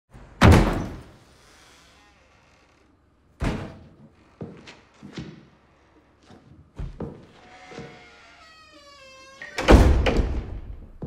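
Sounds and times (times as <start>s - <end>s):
door banging shut: 0.4s - 1.2s, 7.7s - 10.8s.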